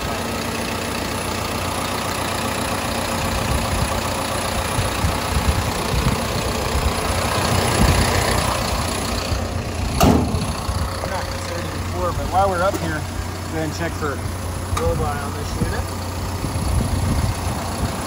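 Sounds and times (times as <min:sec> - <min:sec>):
excavator diesel engine idling: 0:00.0 - 0:18.0
sharp knock: 0:10.0 - 0:10.4.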